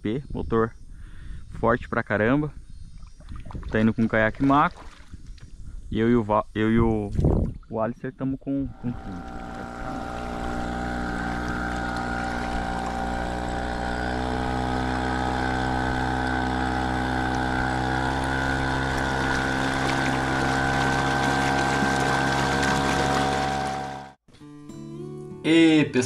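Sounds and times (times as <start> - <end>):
outboard motor running: 8.6 - 24.2.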